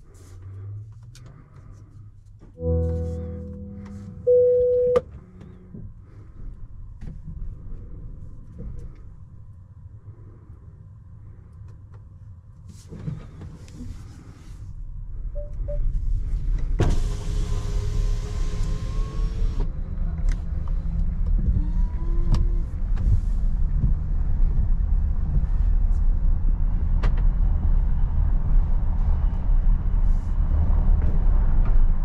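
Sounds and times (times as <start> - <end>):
van tyres rumbling over cobblestones: 15.8 - 32.0.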